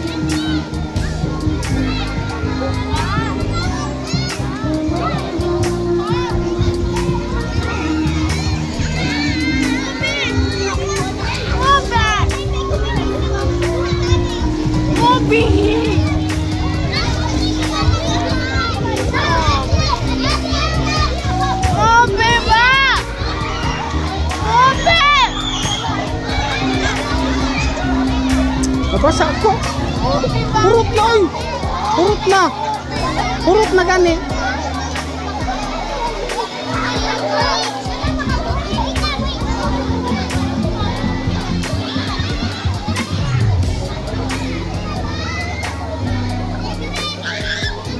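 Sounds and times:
background music: 0.0 - 47.9
children shouting and squealing: 0.0 - 47.9.

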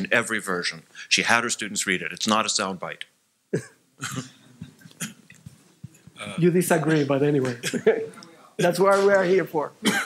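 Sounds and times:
person coughing: 3.5 - 5.2
throat clearing: 3.5 - 5.4.

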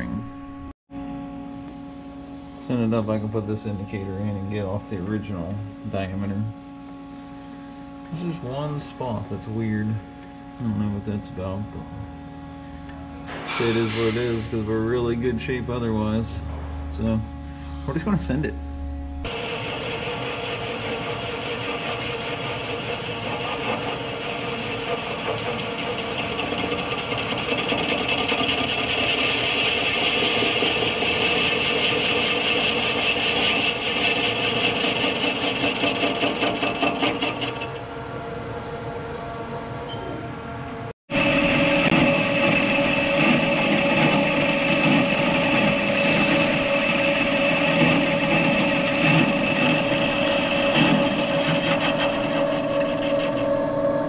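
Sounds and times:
lathe machine whine: 1.3 - 54.0
metal cutting noise: 12.7 - 38.5, 41.1 - 54.0.

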